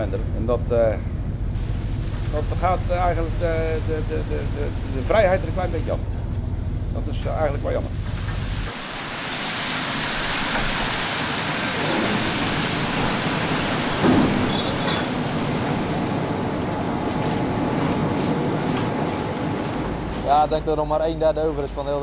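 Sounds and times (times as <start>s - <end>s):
ship machinery hum: 0.0s - 22.0s
wind: 0.0s - 22.0s
water rushing: 1.6s - 22.0s.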